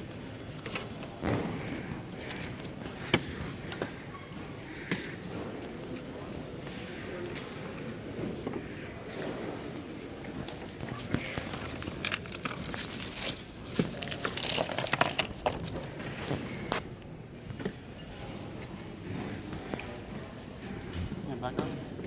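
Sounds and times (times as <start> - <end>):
plastic sleeves crinkling: 10.4 - 16.8.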